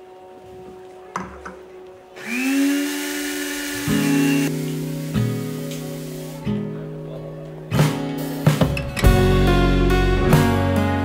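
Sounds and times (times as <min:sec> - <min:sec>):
small motor whirring: 0:02.2 - 0:04.5
acoustic guitar music: 0:03.9 - 0:11.0.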